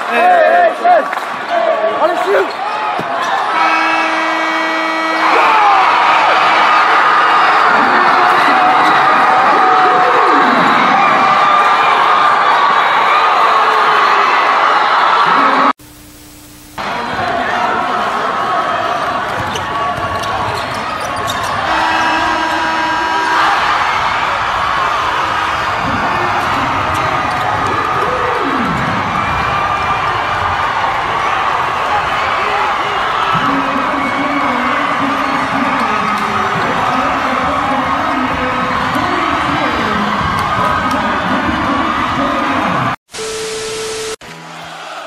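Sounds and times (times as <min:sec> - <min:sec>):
crowd shouting: 0:00.0 - 0:15.7, 0:16.8 - 0:43.0, 0:44.4 - 0:45.0
long held tone: 0:43.2 - 0:44.2.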